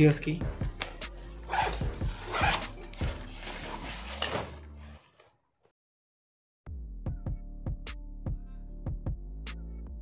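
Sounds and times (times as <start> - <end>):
backpack zipper pulled: 1.4 - 5.2.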